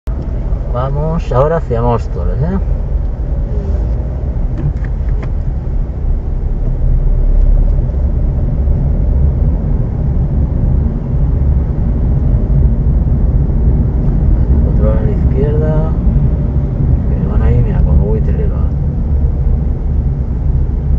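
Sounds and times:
car engine and road rumble: 0.0 - 20.9.

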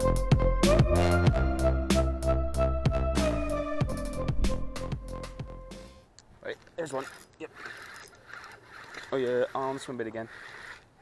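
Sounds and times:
person speaking: 6.3 - 10.8
fishing reel whirring: 6.8 - 11.0.

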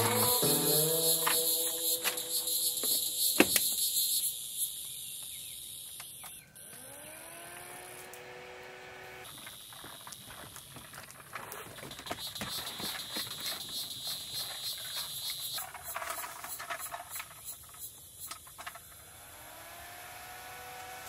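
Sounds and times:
high-pitched insect buzzing: 0.0 - 5.9.

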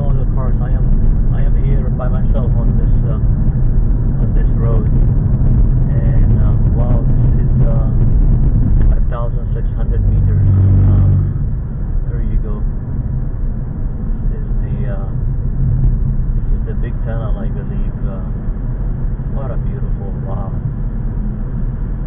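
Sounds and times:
car interior driving rumble: 0.0 - 22.0.

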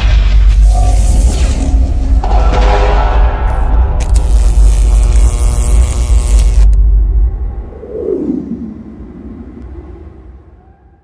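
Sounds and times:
deep rumbling sound effect: 6.7 - 11.0
falling tone: 6.8 - 11.0.

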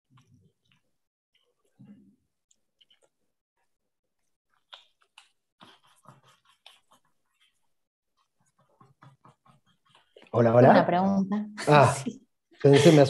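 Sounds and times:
paintbrush strokes on canvas: 5.6 - 10.6.

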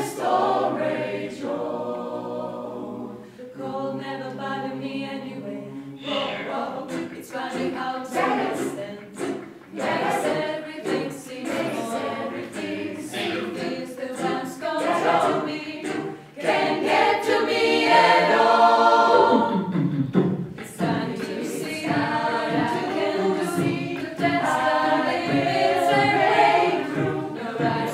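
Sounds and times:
choir singing a cappella: 0.0 - 27.9.

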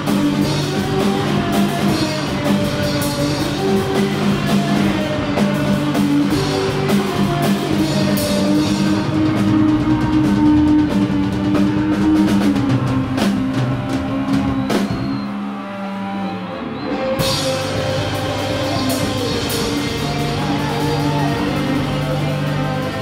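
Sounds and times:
drum kit with cymbal crashes: 0.0 - 15.6, 16.8 - 23.0
electric guitar chords: 0.0 - 23.0.

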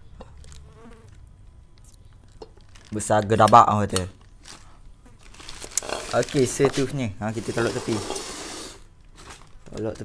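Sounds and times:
faint insect-like buzz: 0.0 - 1.3
plastic rustle: 2.3 - 8.4, 9.0 - 10.0.

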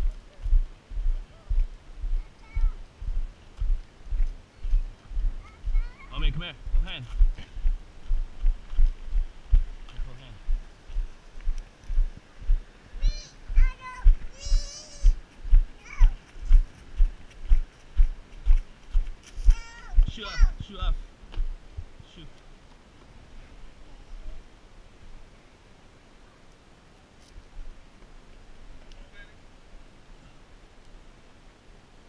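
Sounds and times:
footsteps on gravel: 0.0 - 5.9, 6.6 - 12.6, 13.5 - 20.5.

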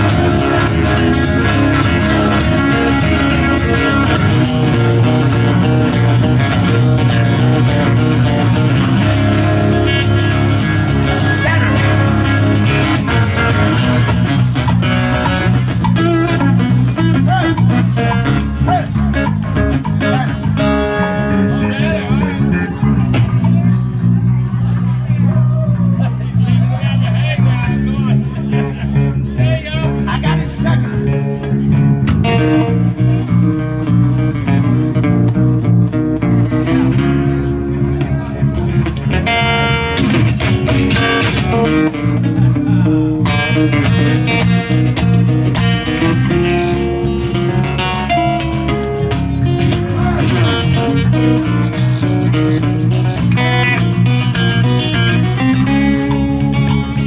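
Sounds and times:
acoustic guitars strumming: 0.0 - 57.0
bass guitar line: 0.0 - 57.0.

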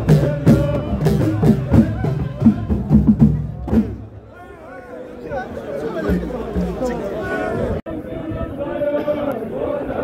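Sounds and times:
drums beating: 0.0 - 4.2, 6.0 - 7.4
crowd of men talking and calling: 0.0 - 10.0
voices over drums: 0.0 - 10.0.

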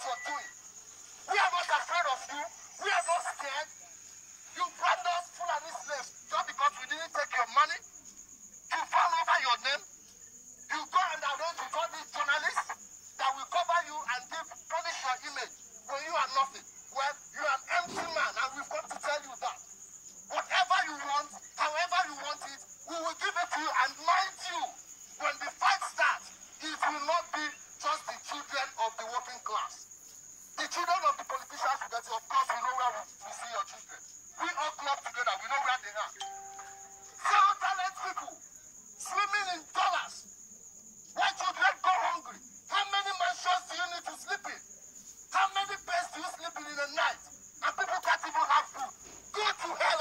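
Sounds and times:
person speaking: 0.0 - 0.5, 36.1 - 38.0
man shouting through megaphone: 0.0 - 0.6, 1.2 - 3.8, 4.5 - 7.8, 8.7 - 9.8, 10.7 - 19.6, 20.3 - 29.8, 30.6 - 36.2, 37.2 - 38.4, 39.0 - 40.2, 41.1 - 44.6, 45.3 - 50.0.

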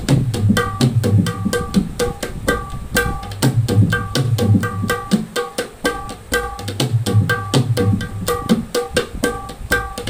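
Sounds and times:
hand drum rhythm: 0.0 - 10.0.

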